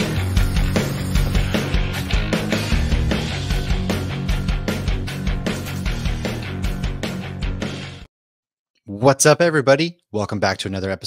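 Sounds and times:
driving drum beat: 0:00.0 - 0:08.0
rock music: 0:00.0 - 0:08.1.

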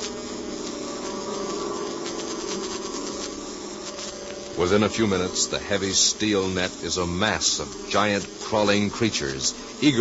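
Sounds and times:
steady buzzing drone: 0:00.0 - 0:10.0.

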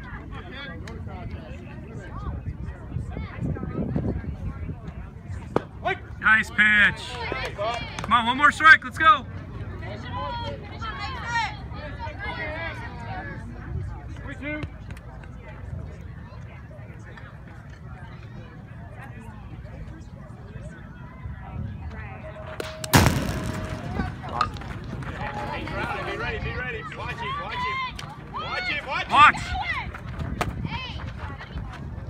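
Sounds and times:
spectators talking: 0:00.0 - 0:32.0
metal bat pinging ball: 0:22.6 - 0:24.6.

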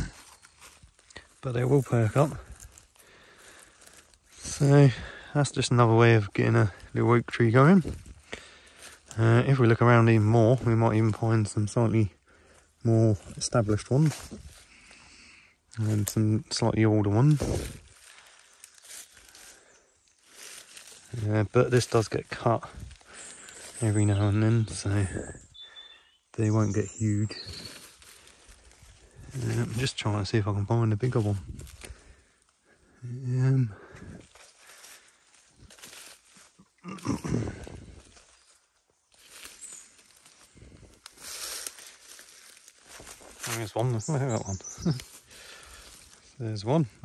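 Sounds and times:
footsteps rustling through dry leaves: 0:00.0 - 0:05.3, 0:06.1 - 0:33.0, 0:33.9 - 0:47.0.

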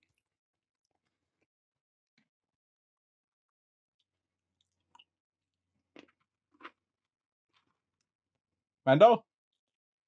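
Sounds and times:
person chewing a snack: 0:05.9 - 0:06.9.

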